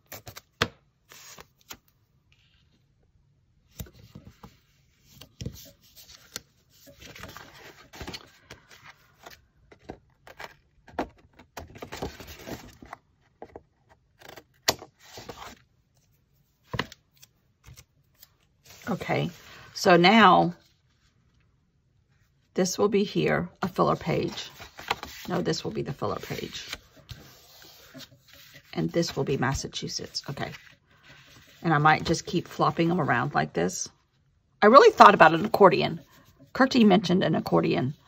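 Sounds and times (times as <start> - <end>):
paper rustling: 3.8 - 10.6, 23.9 - 32.5.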